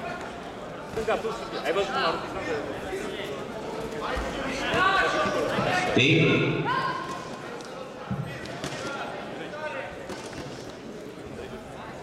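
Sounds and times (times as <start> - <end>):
people talking in hall: 0.0 - 12.0.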